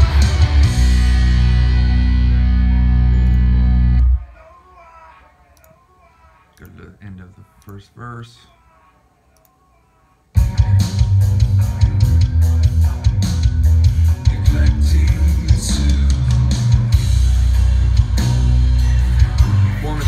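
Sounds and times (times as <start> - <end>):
dense rock music mix: 0.0 - 4.3, 10.4 - 20.0.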